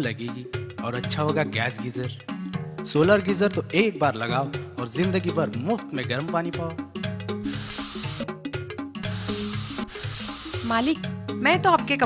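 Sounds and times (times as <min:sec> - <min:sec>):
background music with held notes: 0:00.0 - 0:12.0
loud hissing sound effect: 0:07.4 - 0:08.3, 0:09.0 - 0:11.0.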